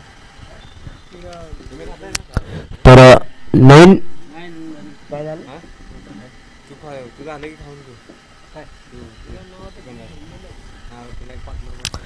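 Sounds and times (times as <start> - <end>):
distant voices of players: 0.2 - 11.8.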